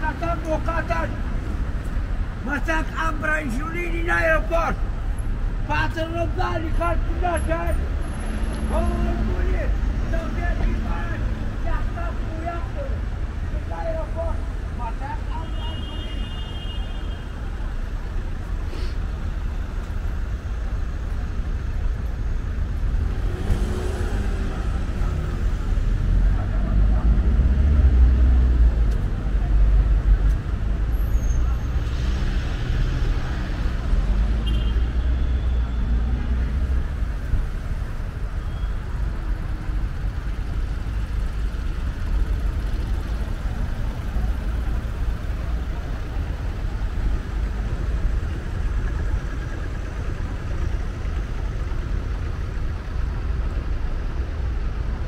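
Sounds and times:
motor vehicles passing: 0.0 - 15.3, 22.0 - 55.0
heavy low engine rumble: 35.6 - 55.0.

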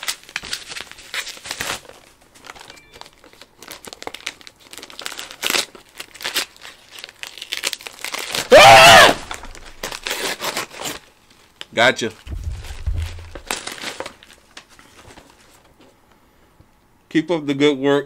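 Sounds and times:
packaging crinkling and tearing: 0.0 - 12.2, 13.4 - 15.7.

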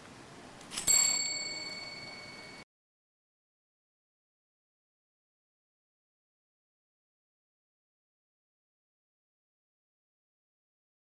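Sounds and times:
bell ding: 0.8 - 2.7.

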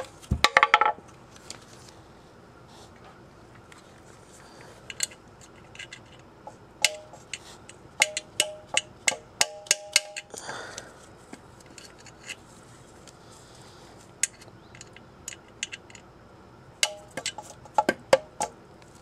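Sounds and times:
wrench clicking on metal: 8.0 - 10.3.

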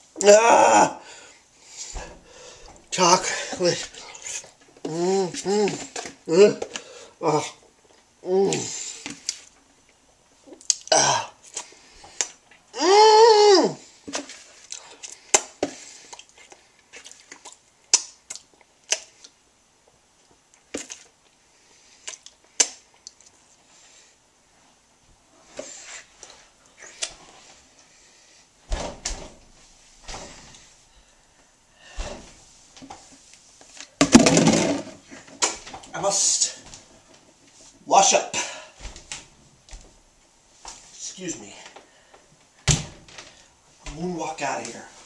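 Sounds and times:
lip smacks and mouth clicks: 10.5 - 10.9, 16.1 - 19.4, 22.0 - 23.4.

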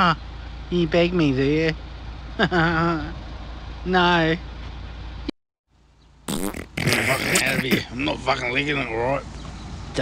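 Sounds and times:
fart noise: 6.3 - 7.9
man speaking: 6.9 - 9.0.

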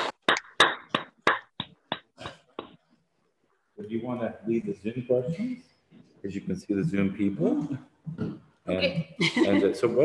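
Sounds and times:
audience applause: 0.0 - 1.7.

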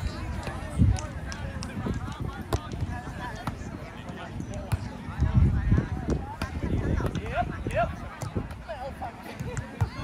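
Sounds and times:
chatter of people: 0.0 - 10.0.

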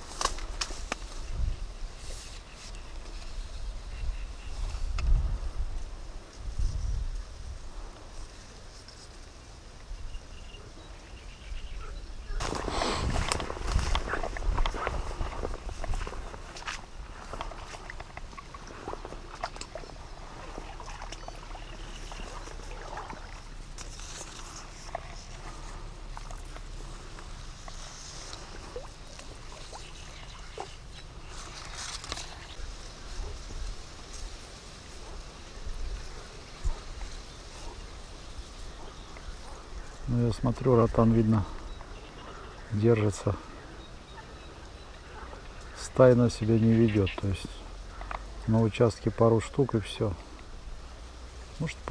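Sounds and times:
reeds rustling: 0.0 - 11.1, 12.3 - 51.9
faint outdoor background: 0.0 - 51.9.

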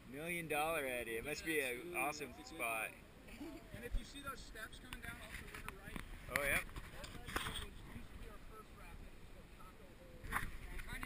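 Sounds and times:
faint voices talking: 0.0 - 11.0.

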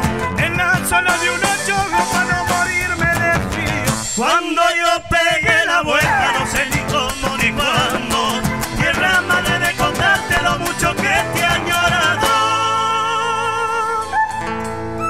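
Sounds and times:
drum strikes: 0.0 - 4.2, 5.5 - 12.4
folk band playing: 0.0 - 4.2, 5.2 - 15.0.

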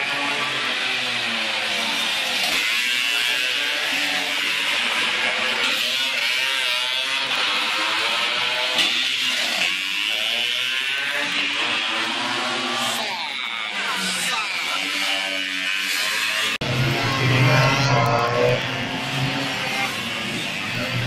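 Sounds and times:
scooter engines revving: 0.0 - 21.0.

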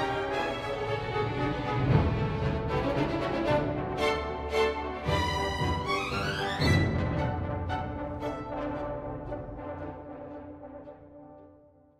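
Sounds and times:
orchestral music: 0.0 - 11.9.

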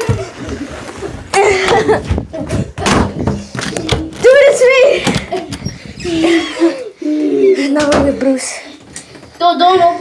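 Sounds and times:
sharp thumps and knocks: 1.7 - 4.4.

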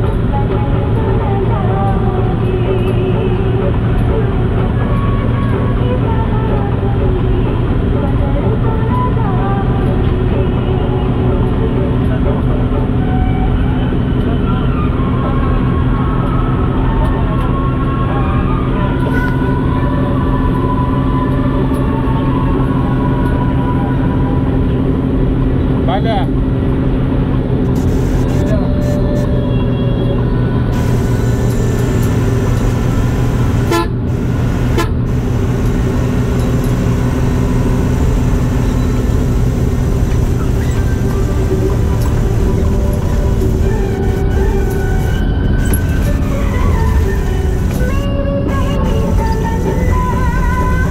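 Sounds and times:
vehicle driving on highway: 0.0 - 50.9.

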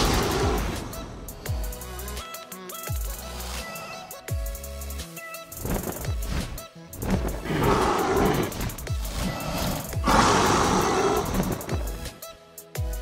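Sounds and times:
dragon roars: 0.0 - 1.4, 7.0 - 12.0
music with deep bass hits: 0.0 - 3.7, 8.4 - 13.0.

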